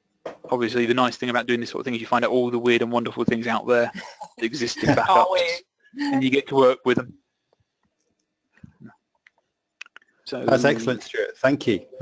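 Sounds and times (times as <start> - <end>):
spoken word: 0.5 - 7.1, 10.3 - 12.0
low murmur of voice: 6.2 - 7.1, 10.3 - 12.0.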